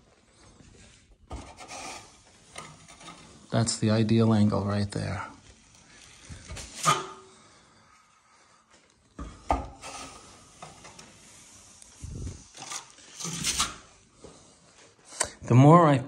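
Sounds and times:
trowel scraping wall: 0.8s - 4.0s, 5.6s - 7.6s, 9.3s - 14.0s.

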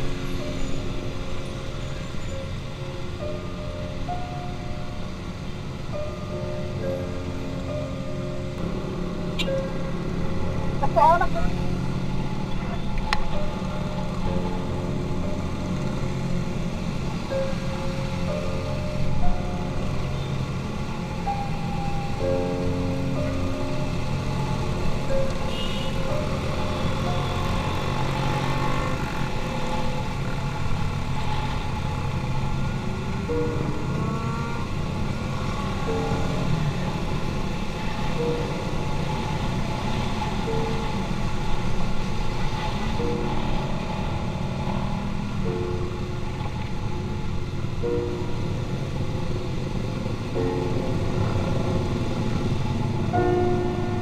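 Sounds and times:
motorcycle engines: 0.0s - 54.0s
road noise: 0.0s - 54.0s.

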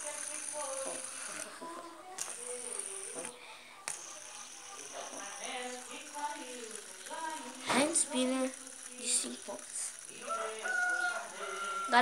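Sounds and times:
fidget spinner whirring: 0.0s - 12.0s
sharp clicks: 2.1s - 11.6s.

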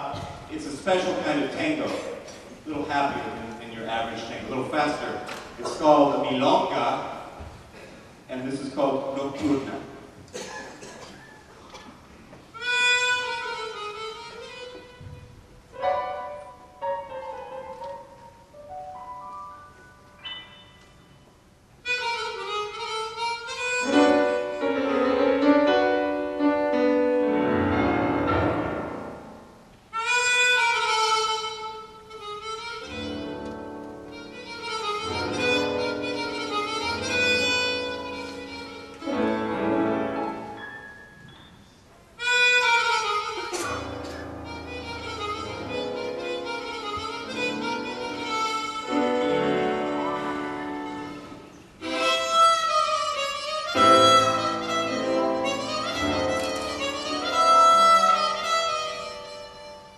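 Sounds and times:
piano accompaniment: 0.0s - 7.6s, 12.6s - 59.9s
chromatic harmonica playing: 0.6s - 7.1s, 12.5s - 59.9s.

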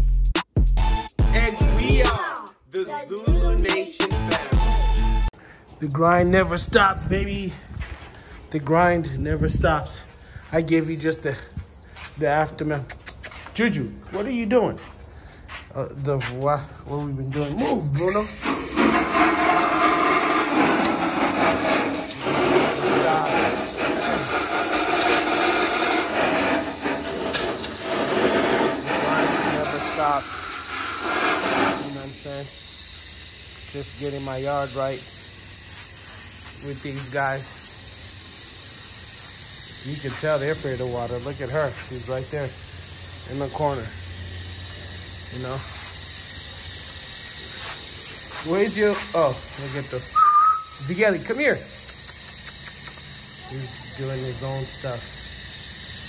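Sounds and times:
hose water spraying onto gravel: 7.0s - 12.8s, 13.5s - 56.0s.

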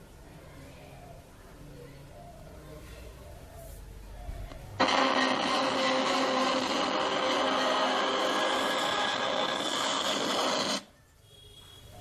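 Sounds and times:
loudspeaker buzz and hiss: 4.5s - 10.9s.

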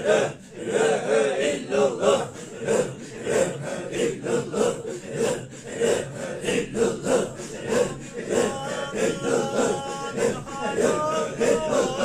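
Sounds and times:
men chanting rhythmically: 0.0s - 12.0s
man singing long notes: 8.2s - 12.0s.

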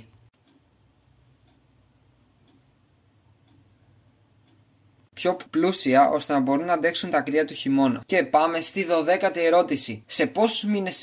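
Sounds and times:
clock ticking: 0.0s - 11.0s.

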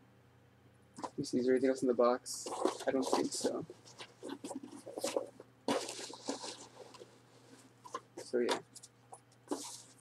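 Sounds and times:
cardboard box rustling and scraping: 2.5s - 7.1s.

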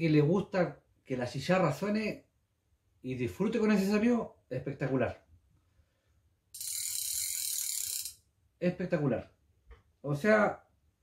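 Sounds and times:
fishing reel drag clicking: 6.6s - 8.2s.

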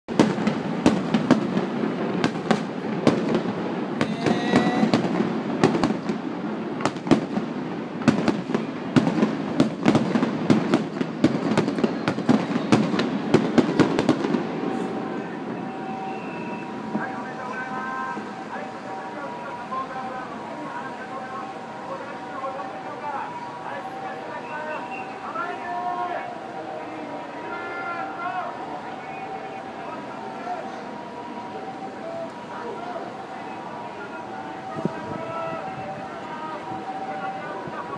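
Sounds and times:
fireworks bangs and crackles: 0.1s - 37.9s
faint voices: 3.9s - 5.2s, 11.6s - 37.9s.

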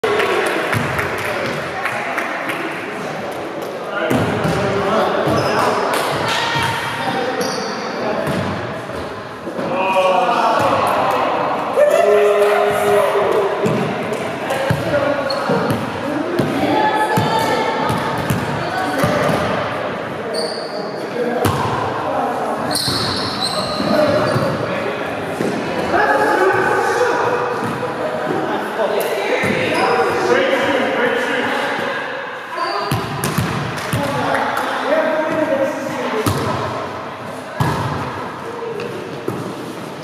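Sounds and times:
sneaker squeaks: 5.2s - 5.8s, 6.6s - 8.4s, 15.2s - 15.8s, 20.3s - 21.2s, 22.6s - 24.6s, 32.6s - 33.4s.

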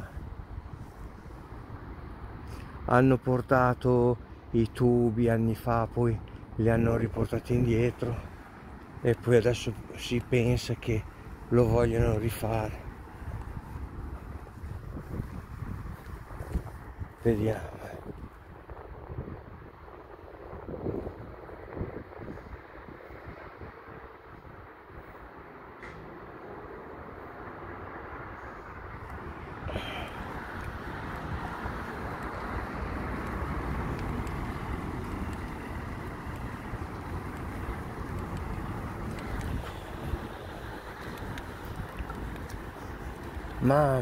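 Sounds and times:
wind rumbling on microphone: 0.0s - 3.0s, 4.2s - 44.0s.

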